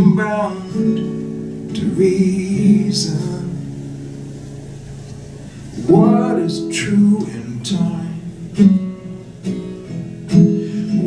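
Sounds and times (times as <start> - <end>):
man singing: 0.0 - 1.0, 1.7 - 3.8, 5.8 - 8.6
acoustic guitar notes: 0.0 - 11.0.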